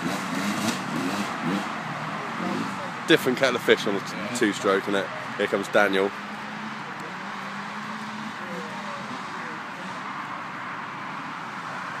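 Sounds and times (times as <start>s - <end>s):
distant dirt bike engine buzz: 0.0s - 10.4s.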